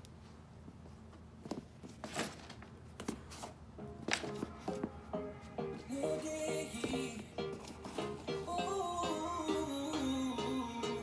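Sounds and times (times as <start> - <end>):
background music melodic notes: 3.8 - 11.0.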